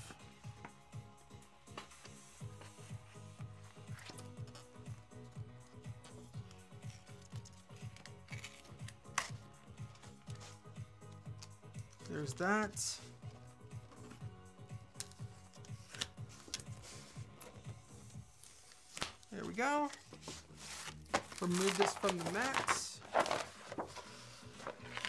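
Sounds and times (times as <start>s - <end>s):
soft music with steady beat: 0.0s - 25.0s
vinyl peeling clicks and rustles: 6.8s - 10.4s, 18.5s - 25.0s.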